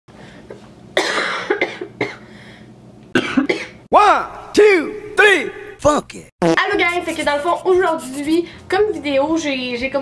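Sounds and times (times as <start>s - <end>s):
woman coughing: 1.0s - 2.2s, 3.2s - 3.8s.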